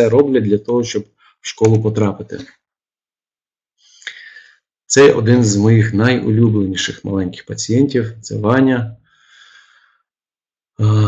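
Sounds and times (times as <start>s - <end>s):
man speaking: 0.0s - 2.6s, 4.0s - 9.0s, 10.8s - 11.0s
man breathing faintly: 9.1s - 10.1s.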